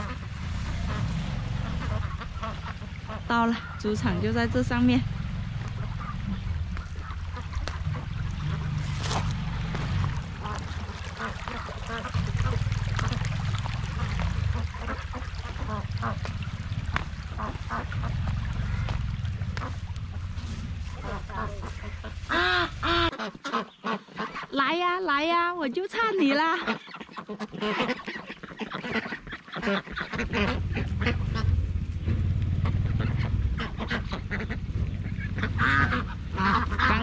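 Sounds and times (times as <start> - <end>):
steady low rumble: 0.0 - 23.1, 29.8 - 37.0
ducks quacking: 0.0 - 37.0.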